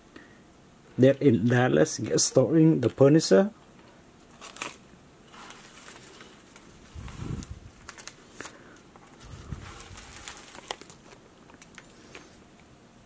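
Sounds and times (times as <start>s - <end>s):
plastic bags crinkling and clicking: 3.8s - 12.3s.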